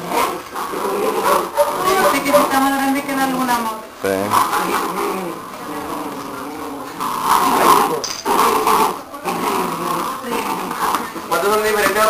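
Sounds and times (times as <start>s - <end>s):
puppies growling and whimpering: 0.0s - 2.7s, 4.2s - 12.0s.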